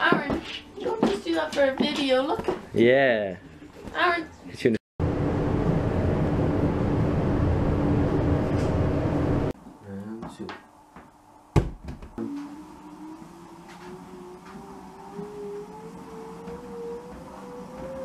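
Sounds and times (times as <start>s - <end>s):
treadmill motor whine: 12.2s - 18.0s.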